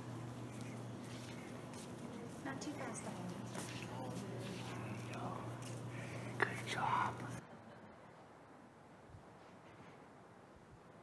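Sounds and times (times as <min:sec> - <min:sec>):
steady low hum: 0:00.0 - 0:09.3
faint whispery voices: 0:00.3 - 0:07.8.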